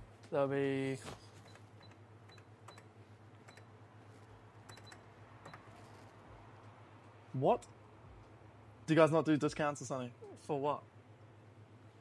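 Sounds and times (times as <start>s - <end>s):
low steady hum: 0.0s - 12.0s
checkout till clicks and beeps: 1.3s - 3.8s, 4.5s - 6.1s.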